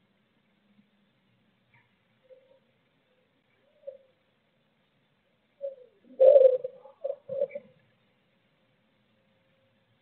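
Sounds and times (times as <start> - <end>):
pigeon cooing: 5.6 - 7.8.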